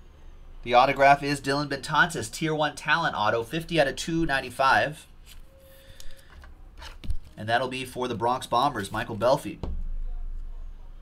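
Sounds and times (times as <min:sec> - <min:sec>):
trading cards rubbing and sliding: 0:05.2 - 0:07.4.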